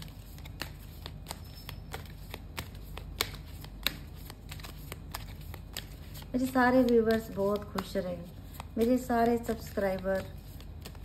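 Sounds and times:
cards being shuffled: 0.0s - 11.0s.

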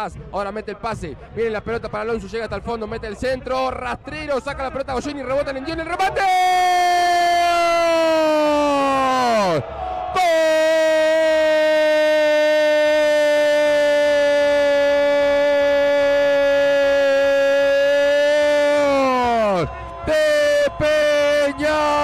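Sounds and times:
man shouting long goal cry: 5.8s - 22.0s.

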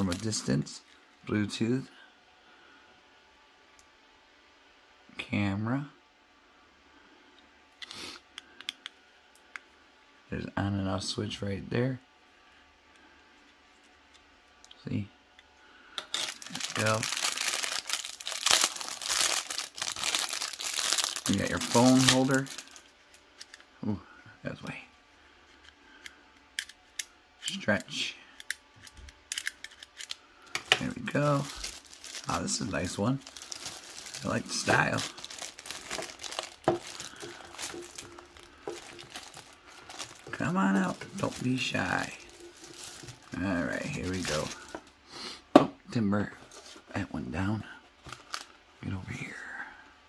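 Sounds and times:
plastic rustle: 0.0s - 0.6s, 16.1s - 23.6s, 29.7s - 44.9s, 46.4s - 46.9s, 48.0s - 48.6s.

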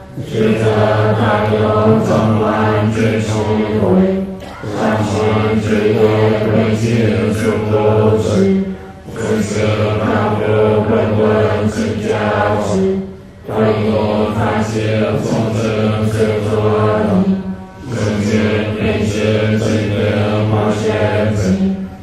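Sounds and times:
low voice chanting mantra: 0.0s - 22.0s.

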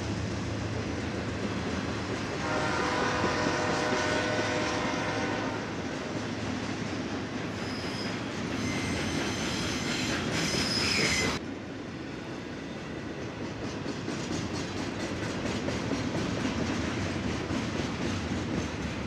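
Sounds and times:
freight train rumbling: 0.0s - 19.0s
high wheel squeal: 7.5s - 11.4s.

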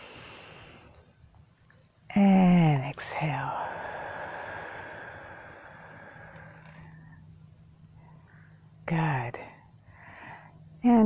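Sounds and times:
person exhaling slowly: 0.0s - 1.0s, 3.4s - 7.2s.

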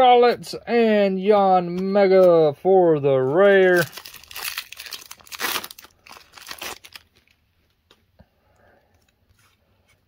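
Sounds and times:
foil wrapper tearing and crinkling: 3.6s - 7.4s.

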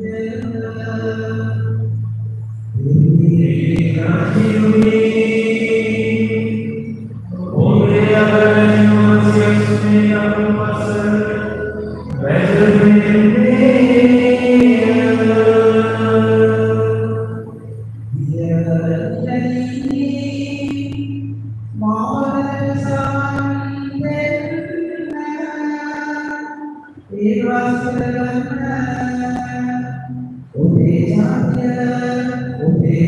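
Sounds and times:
person chanting through speakers: 0.0s - 2.2s, 2.8s - 33.0s
low accompanying tone: 0.0s - 33.0s.

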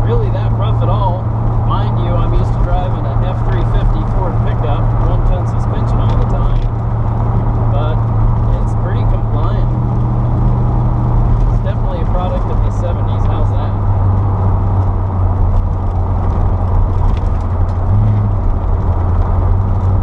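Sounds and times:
car engine drone: 0.0s - 20.0s
road noise: 0.0s - 20.0s.

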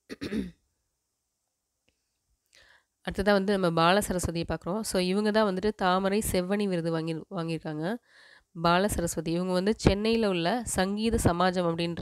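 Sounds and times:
person clearing throat: 0.0s - 0.6s.

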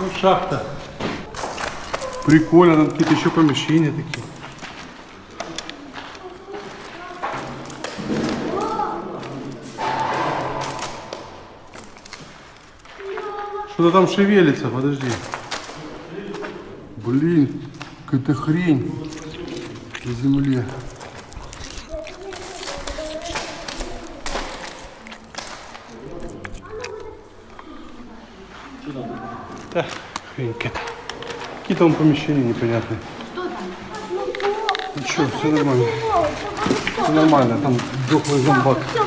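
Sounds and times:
indistinct voices: 1.2s - 12.1s, 18.2s - 39.0s.

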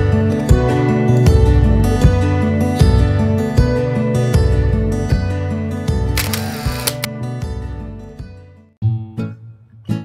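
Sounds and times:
camera shutter sound effect: 6.2s - 7.1s.

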